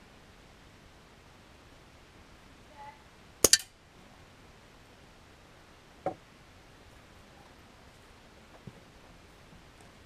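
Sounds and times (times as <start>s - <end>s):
air rifle firing crack: 3.4s - 3.7s.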